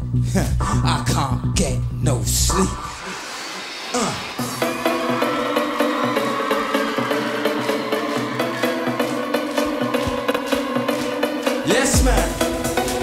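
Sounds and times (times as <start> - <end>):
synthesizer riff: 0.0 - 13.0
hi-hats and percussion beat: 2.4 - 13.0.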